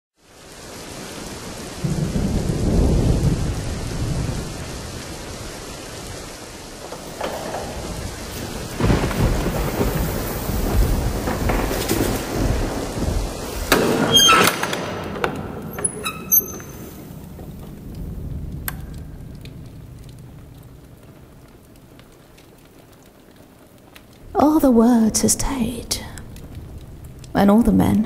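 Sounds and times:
deep rumbles: 6.2s - 28.0s.

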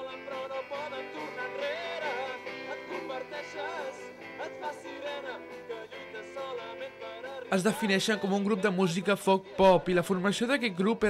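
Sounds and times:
guitar accompaniment: 0.0s - 11.0s
voices singing: 0.0s - 11.0s.

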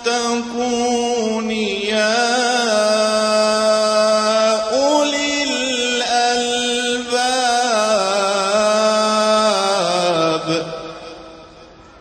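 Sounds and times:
man chanting: 0.0s - 11.7s.

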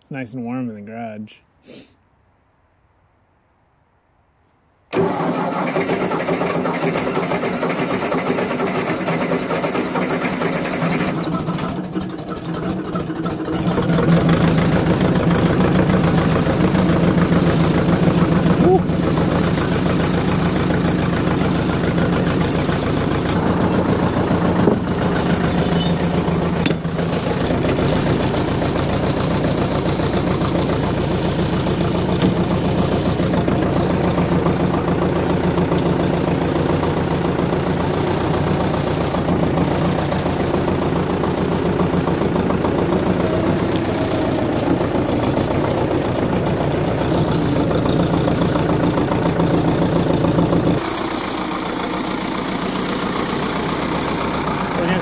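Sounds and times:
diesel engine starting and idling: 4.9s - 55.0s
starter motor cranking: 4.9s - 55.0s.

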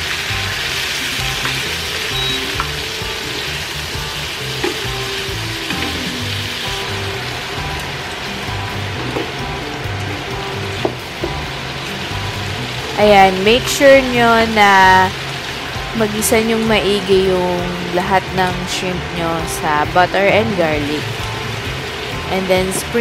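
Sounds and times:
shrimp sizzling in a pan: 0.0s - 23.0s.

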